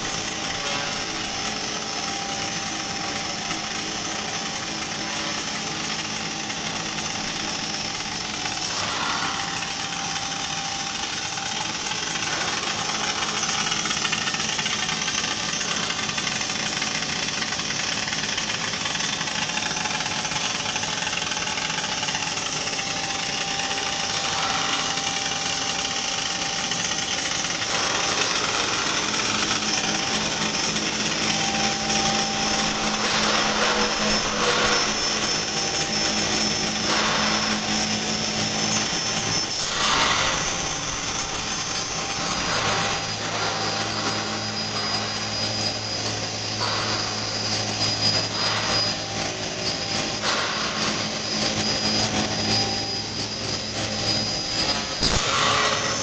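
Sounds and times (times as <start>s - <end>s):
pipe mill mechanical noise: 0.0s - 56.0s.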